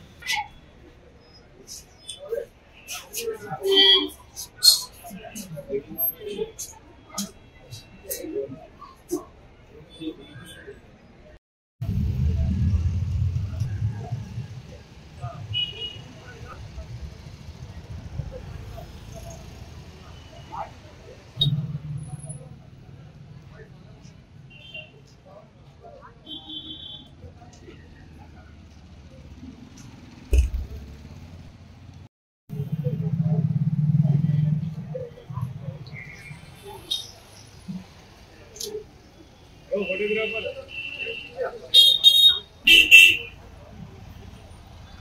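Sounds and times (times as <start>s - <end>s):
faint voices: 0.0s - 11.4s, 12.2s - 45.0s
vehicle engine rumbling: 11.8s - 24.5s, 27.5s - 38.9s
sharp thump: 30.3s - 30.8s.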